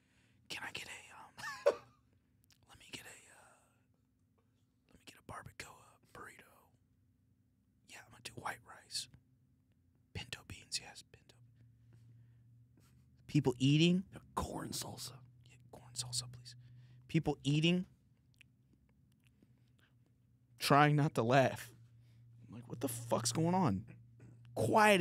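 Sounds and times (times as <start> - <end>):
man whispering: 0.5 - 1.4, 2.4 - 3.9, 4.8 - 6.9, 7.8 - 9.2, 10.1 - 11.7, 13.2 - 18.4, 22.4 - 25.0.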